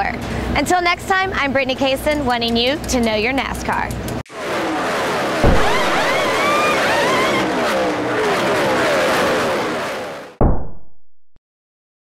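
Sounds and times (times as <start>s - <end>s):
race cars passing at speed: 4.3s - 10.4s
low thump: 5.4s - 7.2s, 10.4s - 11.0s.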